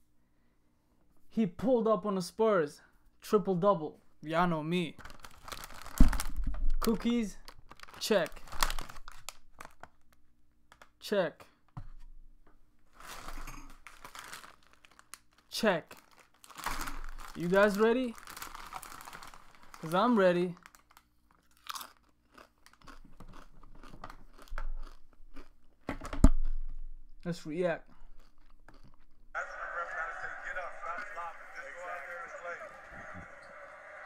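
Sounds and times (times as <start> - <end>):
plastic wrapper crinkling: 5.0 - 10.9, 13.0 - 23.0
person crunching a cookie: 20.6 - 25.8, 27.8 - 29.3
faint steady hum: 29.3 - 34.0.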